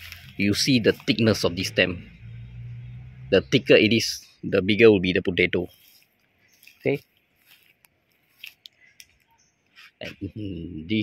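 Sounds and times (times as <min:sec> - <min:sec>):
footsteps crunching on dry leaves: 0:00.0 - 0:01.4, 0:05.6 - 0:09.0.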